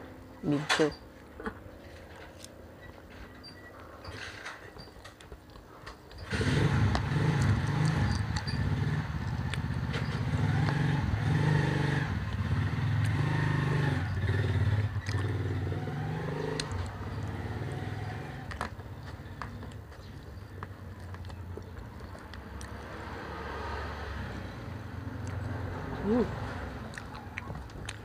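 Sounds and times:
motorcycle engine running: 6.2 - 20.1.

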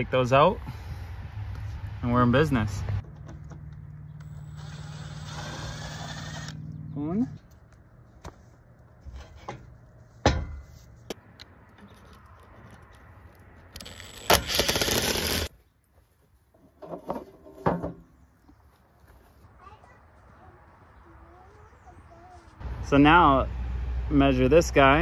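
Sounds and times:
impact driver running: 4.2 - 6.6, 13.8 - 15.5.

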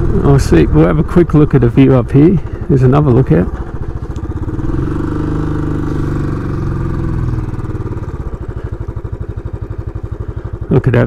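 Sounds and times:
motorcycle engine thumping: 0.0 - 10.7.

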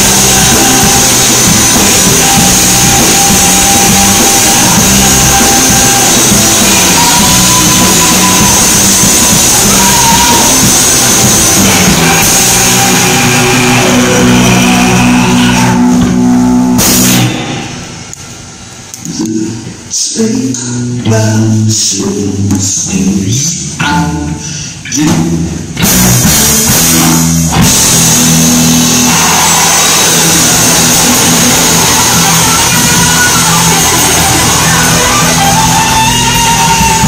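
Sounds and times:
rock band playing: 0.0 - 18.5, 25.1 - 37.0
distorted electric guitar chords: 0.0 - 19.9, 25.4 - 37.0.

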